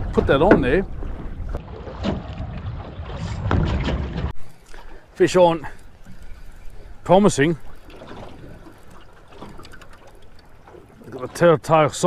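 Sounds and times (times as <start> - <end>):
water lapping against boat: 0.0 - 12.0.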